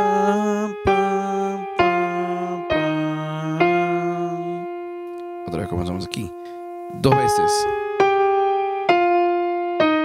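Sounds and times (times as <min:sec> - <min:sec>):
digital piano melody: 0:00.0 - 0:10.0.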